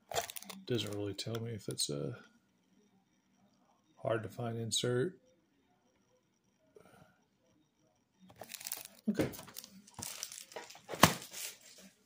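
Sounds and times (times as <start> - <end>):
plastic wrap crinkling and tearing: 0.1 - 0.6, 8.4 - 11.6.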